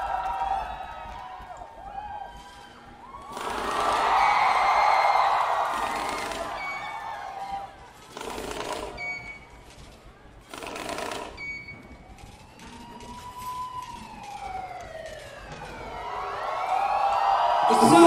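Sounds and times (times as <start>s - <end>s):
siren-like wail: 0.0s - 7.8s, 12.0s - 18.0s
crowd screaming: 0.0s - 8.0s, 15.5s - 18.0s
short high beeps: 9.0s - 9.5s.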